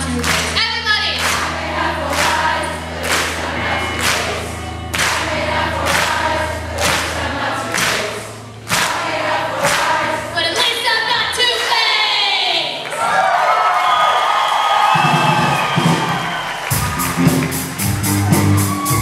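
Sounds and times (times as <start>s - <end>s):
live rock band: 15.0s - 19.0s.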